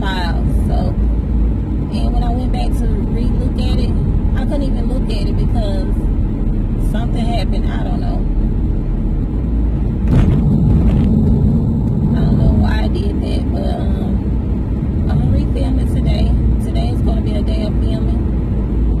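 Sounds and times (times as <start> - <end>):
car interior driving rumble: 0.0 - 19.0.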